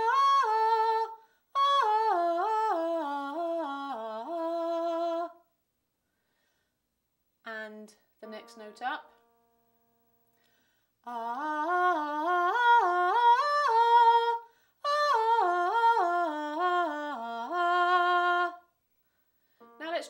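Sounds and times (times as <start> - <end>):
woman singing vocal exercise: 11.0 - 18.7.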